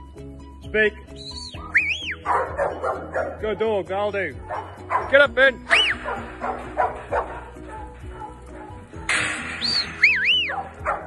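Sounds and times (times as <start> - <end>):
dog yelping: 2.1 - 3.4, 4.4 - 8.9, 10.0 - 11.0
dog barking: 2.2 - 3.4, 4.4 - 8.8, 10.5 - 11.0.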